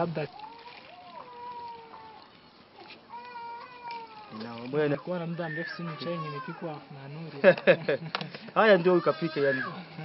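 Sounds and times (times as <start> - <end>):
high-pitched animal cries: 0.3 - 4.4, 5.0 - 6.7, 8.7 - 9.9.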